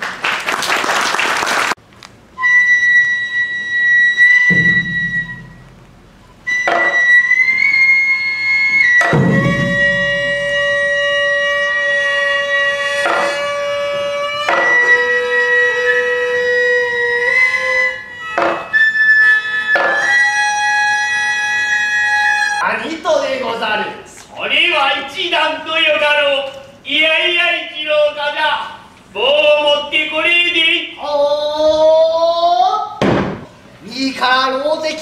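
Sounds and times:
wind instruments holding long notes: 0:02.4 - 0:22.6
deep drum strokes: 0:04.5 - 0:06.4, 0:09.0 - 0:11.0.

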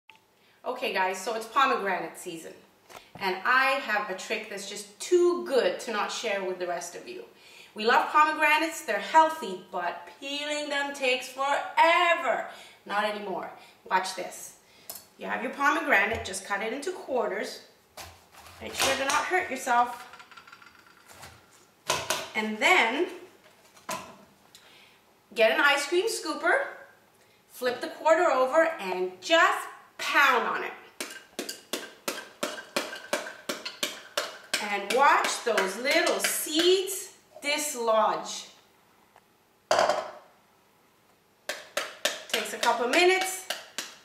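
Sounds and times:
metal scoop knocking fruit: 0:31.0 - 0:36.4.

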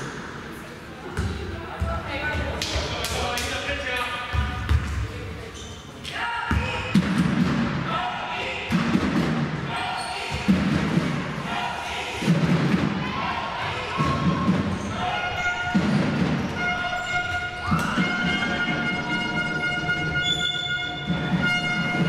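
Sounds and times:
basketball bouncing on court: 0:01.1 - 0:02.8, 0:04.3 - 0:05.1, 0:06.5 - 0:07.6
players shouting: 0:07.8 - 0:19.0.

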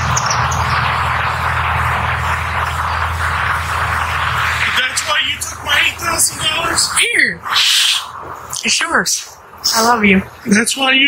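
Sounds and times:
loud even hiss: 0:00.0 - 0:10.1
low steady hum: 0:00.0 - 0:11.0.

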